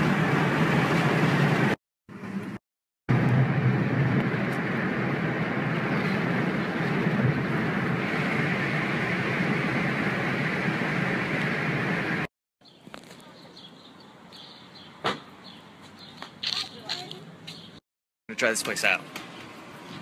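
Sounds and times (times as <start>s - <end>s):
moving car rumble: 0.0s - 13.4s.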